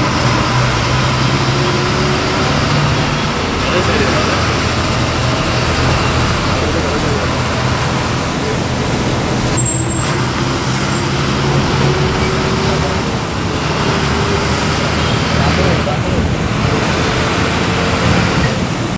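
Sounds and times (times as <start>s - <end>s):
bus engine hum and road noise: 0.0s - 18.9s
people's voices: 0.0s - 18.9s.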